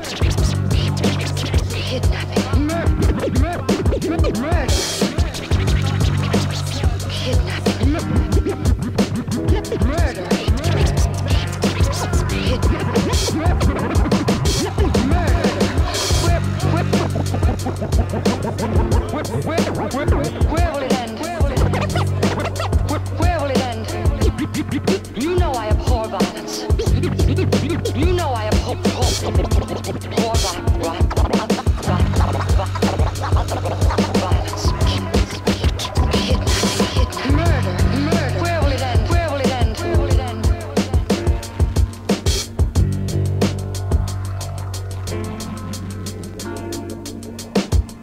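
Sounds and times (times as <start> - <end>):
hip-hop beat with drums and bass: 0.0 - 48.0
turntable scratching: 0.0 - 48.0.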